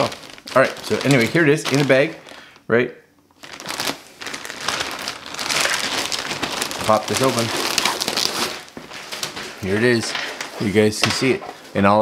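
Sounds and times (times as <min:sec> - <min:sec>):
plastic bag crinkling: 0:00.0 - 0:02.7, 0:03.3 - 0:11.8.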